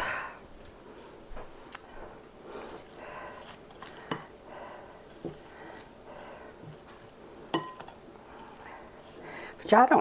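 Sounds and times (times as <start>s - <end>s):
wet squishing vegetables: 1.7s - 10.0s
spoon knocking glass bowl: 7.6s - 7.9s.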